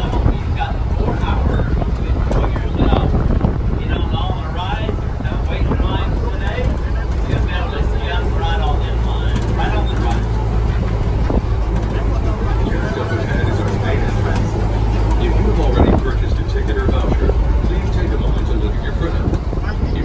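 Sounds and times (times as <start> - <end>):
passengers chatting: 0.0 - 20.0
tram rumbling: 0.0 - 20.0
wind buffeting microphone: 0.0 - 20.0.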